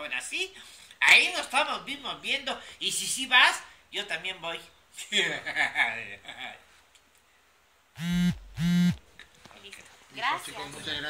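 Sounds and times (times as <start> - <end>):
mobile phone vibrating on table: 8.0 - 9.0.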